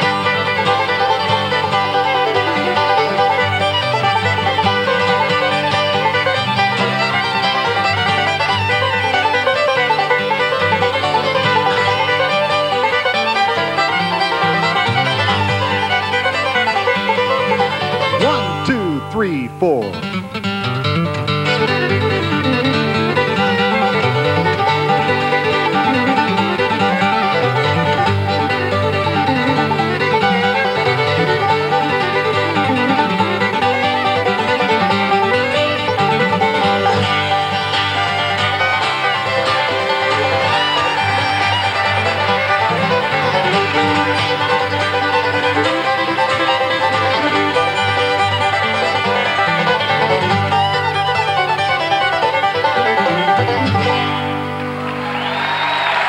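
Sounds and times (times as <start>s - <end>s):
banjo: 0.0s - 18.7s, 20.1s - 55.3s
acoustic guitar: 0.0s - 56.0s
fiddle: 0.0s - 56.0s.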